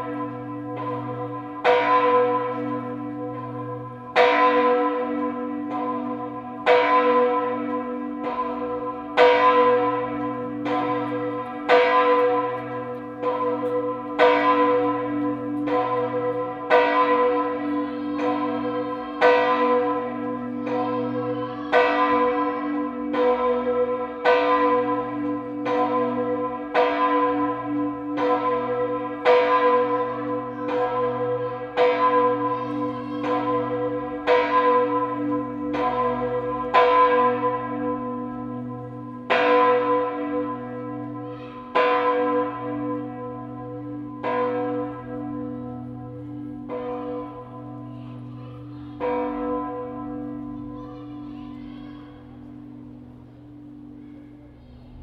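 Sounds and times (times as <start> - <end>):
church bell ringing: 0.0 - 55.0.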